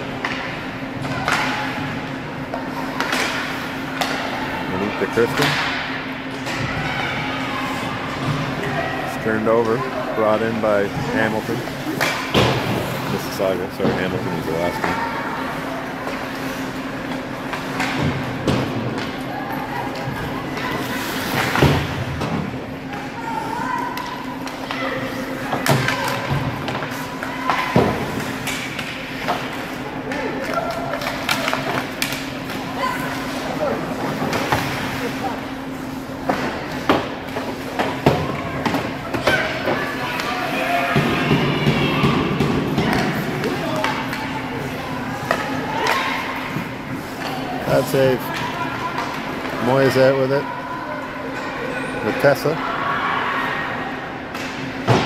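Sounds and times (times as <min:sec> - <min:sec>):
chatter of voices: 0:00.1 - 0:54.8
puck and sticks knocking boards: 0:05.3 - 0:05.9, 0:25.4 - 0:32.6, 0:36.2 - 0:40.3, 0:41.0 - 0:44.3.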